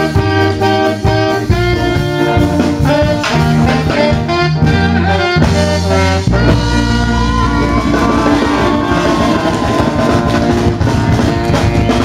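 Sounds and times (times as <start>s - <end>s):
drums and bass: 0.0s - 12.0s
horn section sustained chord: 0.0s - 12.0s.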